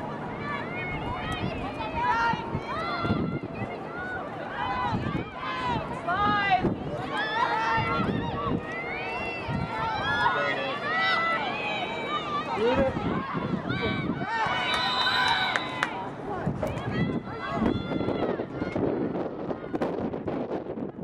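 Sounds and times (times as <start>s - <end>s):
players shouting and calling out: 0.0s - 19.9s.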